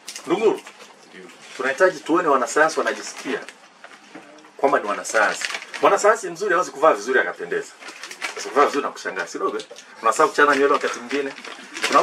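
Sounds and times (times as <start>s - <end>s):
man speaking: 8.4s - 12.0s.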